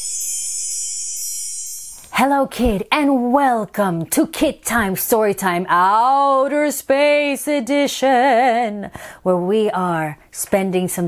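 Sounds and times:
high chime tones: 0.0 - 2.2.

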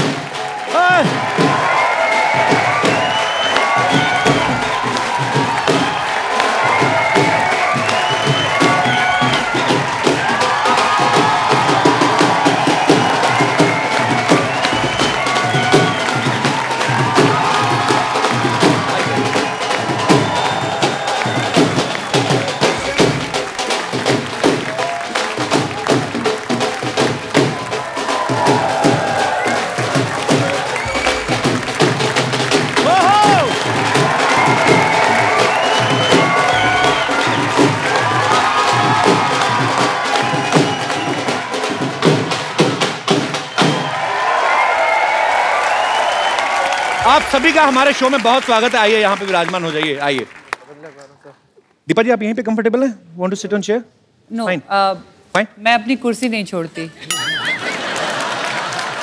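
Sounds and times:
dhol drums beating: 0.0 - 44.2, 46.8 - 49.9
audience cheering: 0.0 - 51.2, 57.1 - 59.0.

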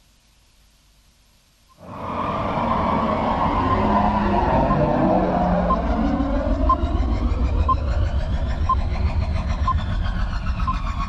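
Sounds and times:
loud rumbling sound effect: 1.8 - 11.0.

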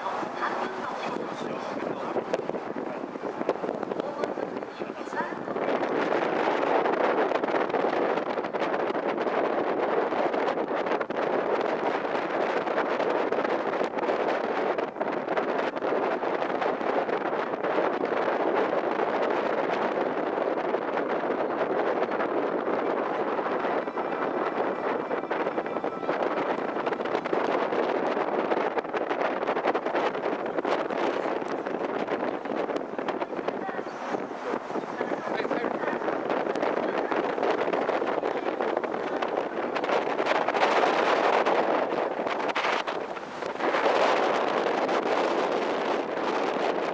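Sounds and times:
water rushing: 0.0 - 7.6, 18.5 - 46.9
wind buffeting microphone: 0.0 - 46.9
wind rushing: 0.0 - 46.9.

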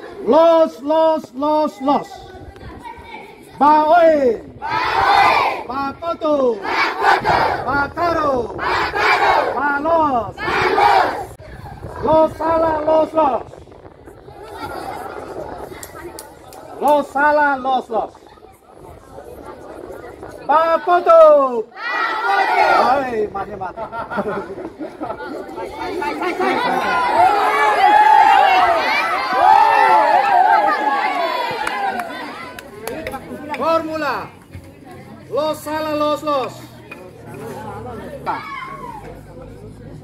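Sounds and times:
children chattering and calling out: 0.0 - 5.7, 10.3 - 17.2, 17.8 - 40.0
children shouting in unison: 4.6 - 5.6, 21.8 - 22.9, 25.8 - 32.6, 38.3 - 39.2.

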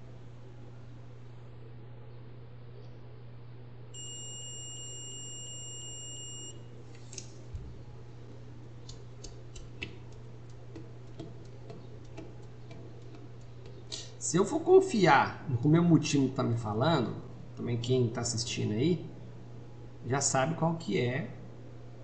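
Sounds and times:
multimeter continuity beep: 4.0 - 6.7
test probes clicking and tapping: 8.8 - 14.1.

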